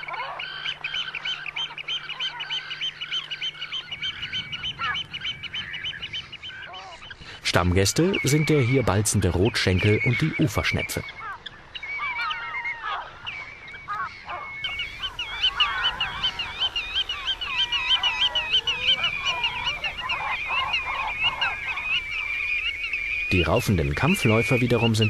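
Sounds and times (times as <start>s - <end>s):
fast repeated high bird calls: 0.0s - 25.0s
wetland birds calling: 0.0s - 25.0s.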